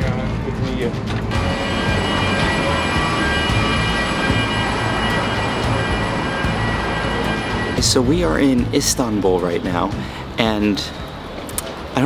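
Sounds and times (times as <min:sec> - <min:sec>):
aircraft machine rumble and whine: 0:00.0 - 0:12.0.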